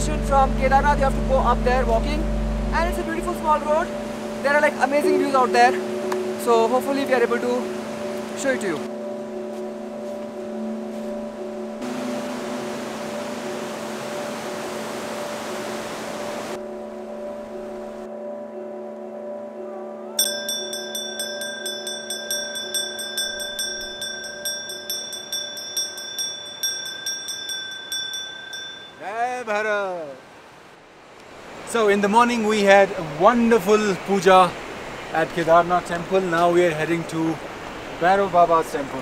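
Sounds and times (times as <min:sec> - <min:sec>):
low drone of sustained tones: 0:00.0 - 0:27.2
small brass bell ringing: 0:20.2 - 0:29.1.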